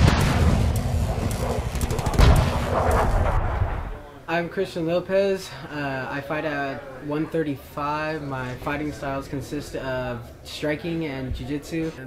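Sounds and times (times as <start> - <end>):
booming explosion-like hits: 0.0 - 4.0.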